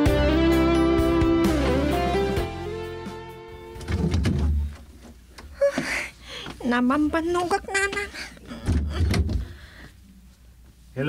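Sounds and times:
door thudding shut: 3.8 - 4.7.

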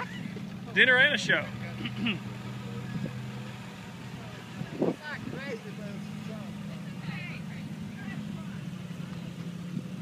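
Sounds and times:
vehicle engine idling: 0.0 - 10.0
voices talking: 0.0 - 10.0.

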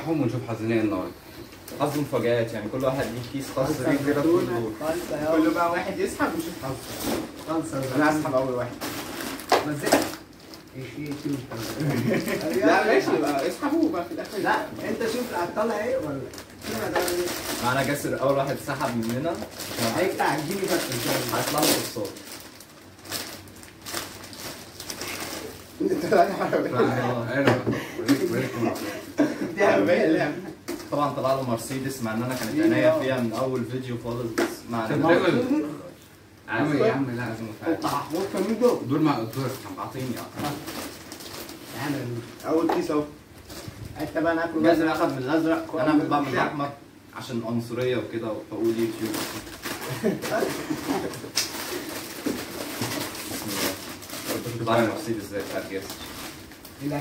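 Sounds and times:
plastic snack bag crinkling: 6.3 - 26.0, 37.6 - 42.6, 48.6 - 57.0.

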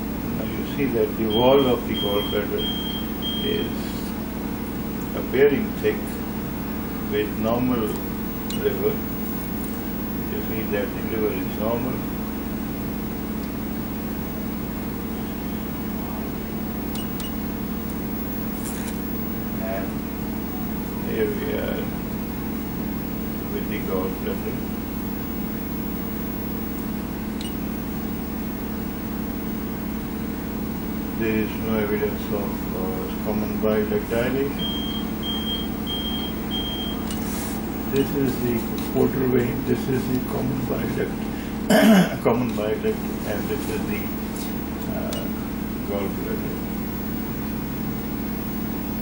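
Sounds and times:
steady machine hum: 0.0 - 49.0
click: 16.9 - 17.4.

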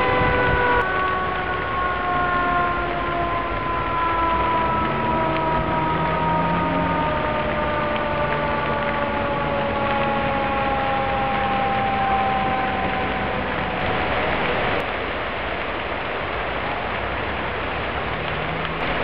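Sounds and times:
siren winding down: 0.0 - 14.8
constant rushing noise: 0.0 - 19.0.

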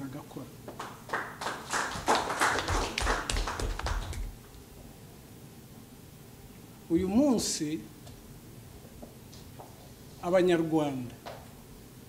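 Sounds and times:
audience clapping: 0.7 - 4.4.

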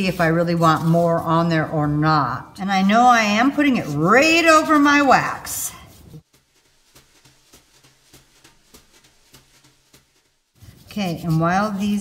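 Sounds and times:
brush strokes spreading sealer: 0.0 - 1.5, 3.6 - 12.0.

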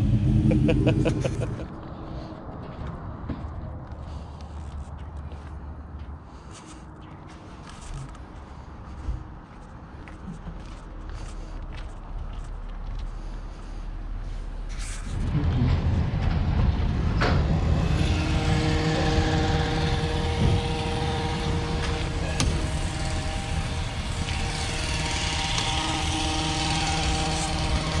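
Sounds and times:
steady hum: 0.0 - 1.9, 15.1 - 28.0
car engine rumbling: 0.0 - 5.2, 13.2 - 28.0.

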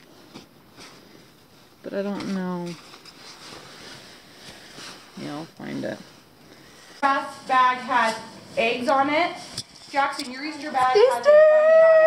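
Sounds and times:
nylon fabric rustling: 0.0 - 11.1.

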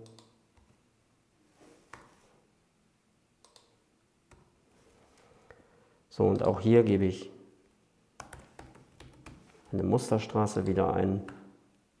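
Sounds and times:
faint keyboard clicks: 3.4 - 4.5.

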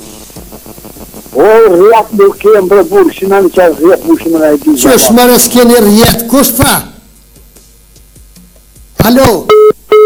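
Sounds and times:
person talking: 1.4 - 7.0.

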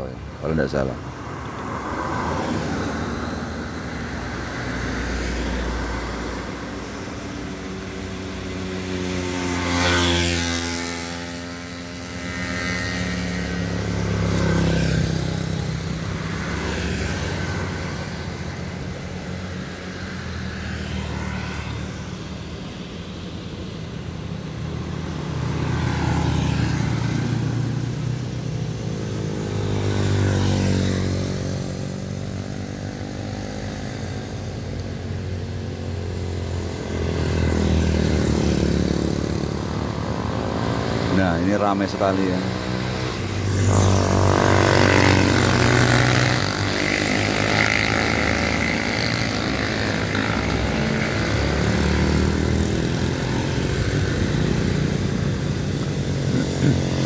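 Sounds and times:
small motorcycles passing: 0.0 - 57.0
traffic passing: 0.0 - 57.0
truck passing: 36.8 - 57.0.

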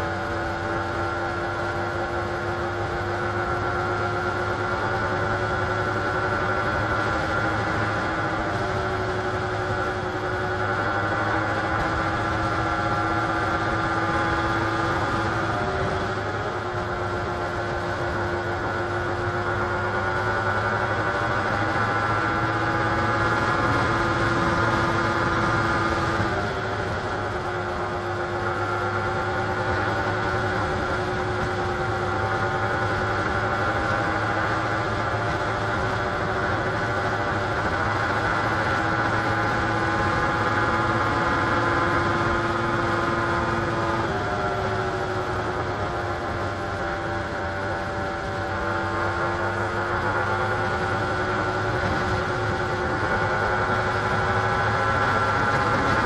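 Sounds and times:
motorcycle engine running: 0.0 - 56.0
road and wind noise: 0.0 - 56.0.

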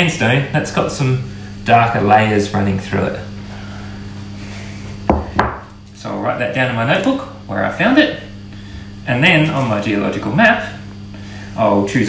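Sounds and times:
stone knocking on tabletop: 5.1 - 5.7.

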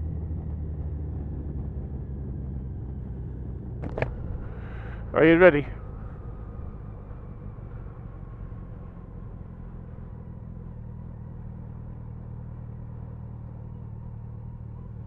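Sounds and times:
motorcycle engine cruising: 0.0 - 15.0
wind and road noise: 0.0 - 15.0.

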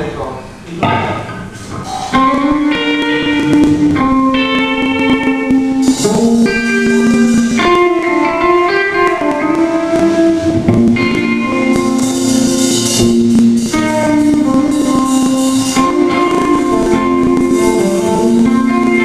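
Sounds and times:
electric guitar chords: 0.8 - 19.0
live rock band playing: 1.5 - 19.0.

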